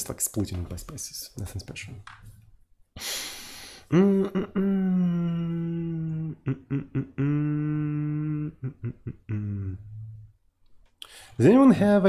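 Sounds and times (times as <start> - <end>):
man humming: 3.9 - 10.4.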